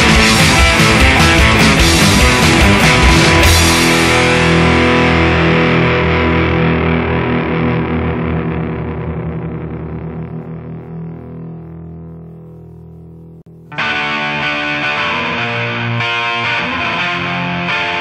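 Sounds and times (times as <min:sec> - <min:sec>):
punk rock song: 0:00.0 - 0:11.4, 0:13.5 - 0:18.0
distorted electric guitar chord ringing: 0:00.0 - 0:18.0.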